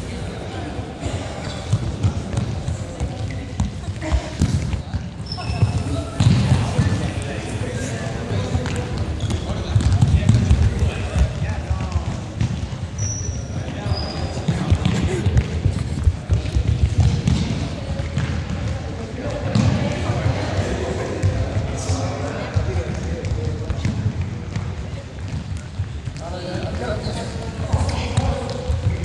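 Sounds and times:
balls bouncing: 1.0s - 29.0s
shoe squeaks: 4.7s - 6.2s, 9.1s - 9.7s, 12.9s - 14.6s.

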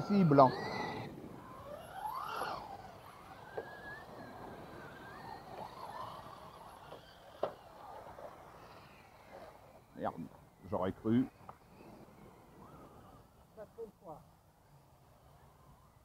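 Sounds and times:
electric rc car motors whining: 0.0s - 16.0s.

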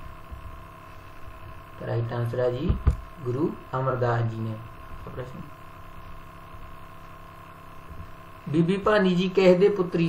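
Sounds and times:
electrical hum: 0.0s - 10.0s.

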